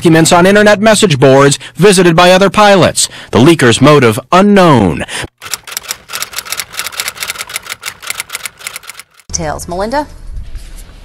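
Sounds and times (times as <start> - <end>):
rapid keyboard typing: 5.3 - 9.3.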